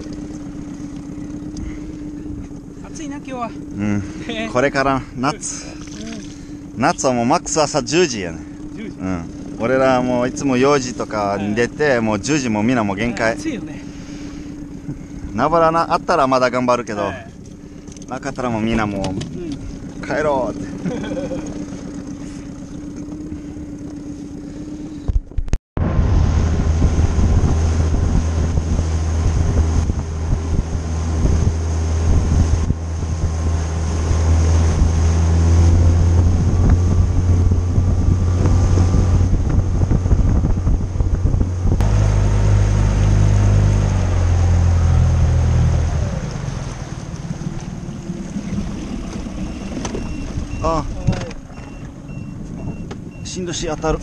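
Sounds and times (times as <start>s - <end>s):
outboard motor droning: 0.0s - 54.0s
wind: 0.0s - 54.0s.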